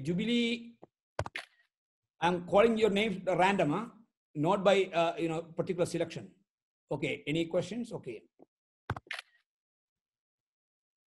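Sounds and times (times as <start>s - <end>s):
brief clipped sound: 8.9s - 9.4s.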